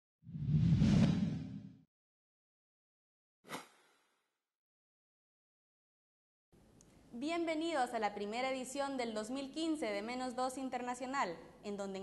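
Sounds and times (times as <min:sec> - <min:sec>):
whoosh with deep rumble: 0:00.3 - 0:01.8.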